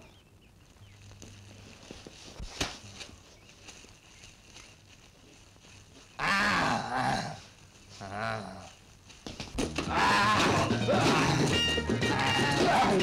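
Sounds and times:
bear-like roar: 6.2s - 7.4s, 9.9s - 13.0s.

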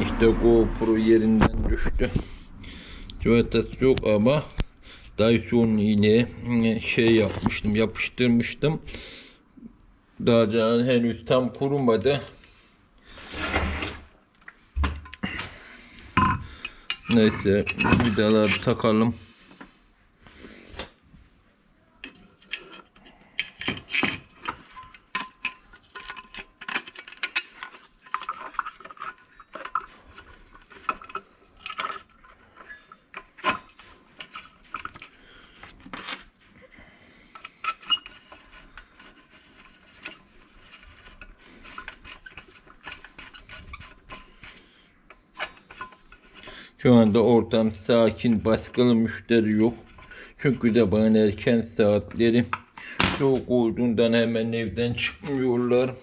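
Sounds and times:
screwdriver and screws handled: 22.0s - 36.4s, 37.2s - 51.2s.

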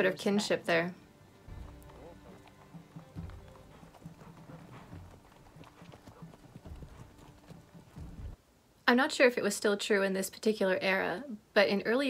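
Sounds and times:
quiet background music: 0.0s - 12.0s
horse hooves on cobblestones: 1.4s - 8.4s.

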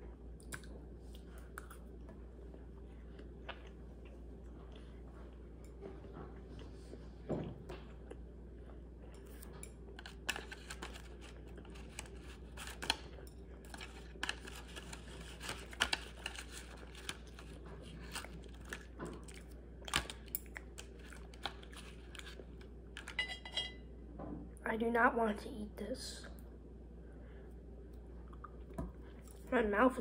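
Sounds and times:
faint low hum: 0.0s - 30.0s.

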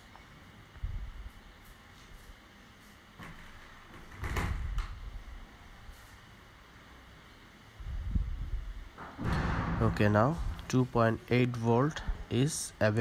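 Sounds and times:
low rumble: 8.0s - 12.3s.

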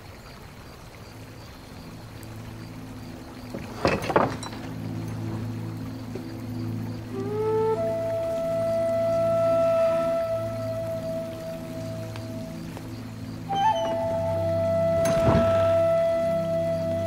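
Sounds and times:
soft low drone: 1.2s - 17.0s
solo melodic instrument: 3.7s - 17.0s.

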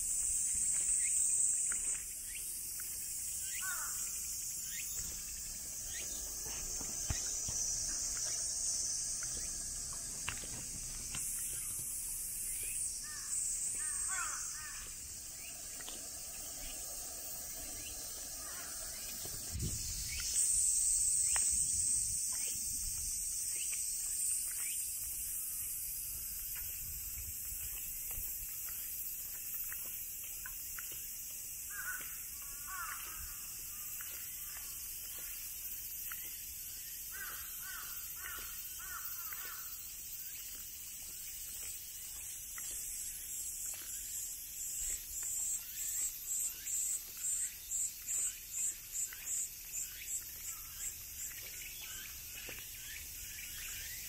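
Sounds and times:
cicadas chorus: 0.0s - 54.0s
crows cawing: 3.6s - 4.2s, 13.0s - 15.2s, 18.4s - 19.0s, 31.7s - 33.9s, 37.1s - 39.8s.

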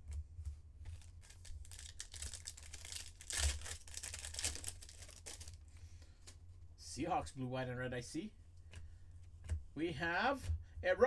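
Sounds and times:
wrapper crinkling: 0.9s - 5.8s
foil wrapper tearing: 1.0s - 5.7s.

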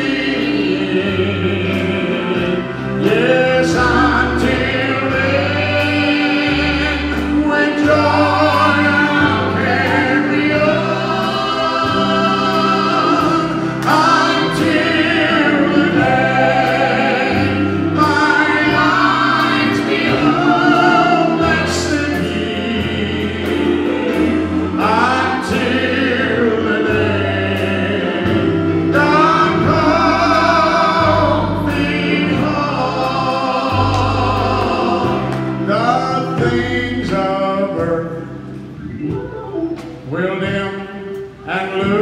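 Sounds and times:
church band playing gospel: 0.0s - 42.0s
singers holding long notes: 0.0s - 42.0s.

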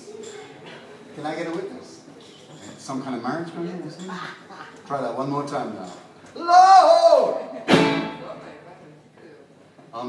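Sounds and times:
singer shouting: 6.4s - 7.5s
blues band accented hit ringing: 7.7s - 8.3s.

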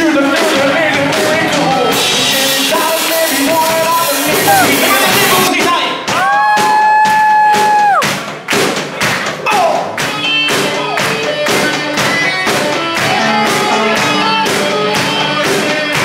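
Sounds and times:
drum kit beat: 0.0s - 16.0s
live rock band playing: 0.0s - 16.0s.

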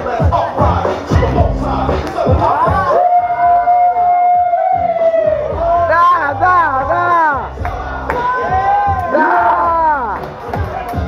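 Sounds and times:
crowd cheering and shouting: 0.0s - 11.0s
dance battle music: 0.0s - 11.0s.

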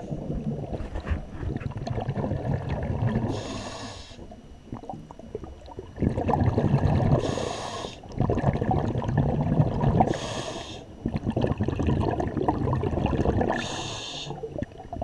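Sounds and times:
exhaled bubbles gurgling underwater: 0.0s - 15.0s
regulator inhale hiss: 3.3s - 4.3s, 7.2s - 8.1s, 10.1s - 11.0s, 13.6s - 14.5s.

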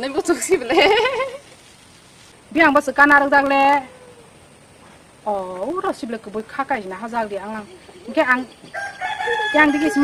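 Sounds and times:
rooster crowing: 8.6s - 10.0s.

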